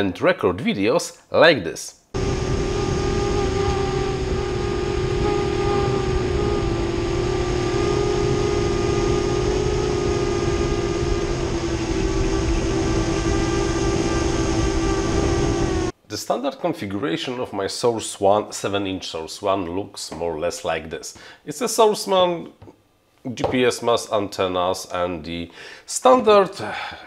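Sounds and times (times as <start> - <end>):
drone propellers humming: 2.2 - 15.9
wind rumble on microphone: 2.2 - 15.9.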